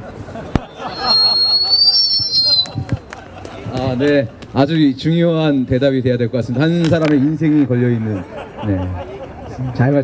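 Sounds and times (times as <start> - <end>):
long high whistle: 0.5 - 2.9.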